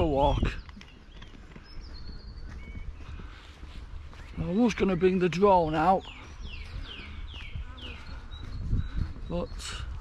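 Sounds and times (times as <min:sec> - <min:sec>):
bird chirps: 0:00.0 - 0:10.0
wind rumble on microphone: 0:00.0 - 0:10.0.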